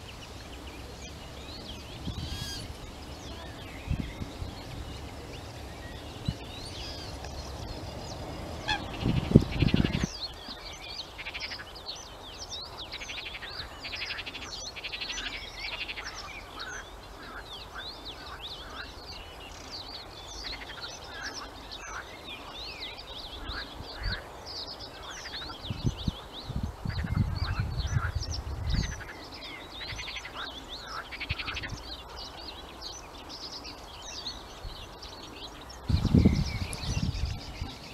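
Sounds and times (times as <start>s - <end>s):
small songbirds chirping: 0.0s - 37.9s
wind buffeting microphone: 1.1s - 10.8s, 25.4s - 30.2s, 35.6s - 37.9s.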